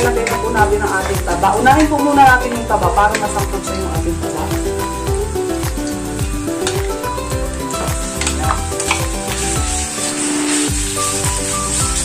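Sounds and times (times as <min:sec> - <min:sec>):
background music with a beat: 0:00.0 - 0:12.0
pork fat sizzling in a pan: 0:00.0 - 0:12.0
wooden spatula stirring: 0:00.0 - 0:12.0.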